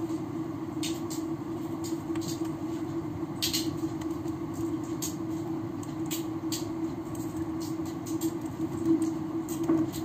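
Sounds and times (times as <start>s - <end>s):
background hum and hiss: 0.0s - 10.0s.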